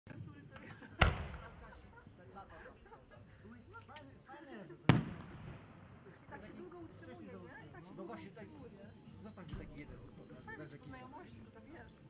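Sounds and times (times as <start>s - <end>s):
firework mortar launch bang: 1.0s - 1.8s, 4.9s - 6.0s.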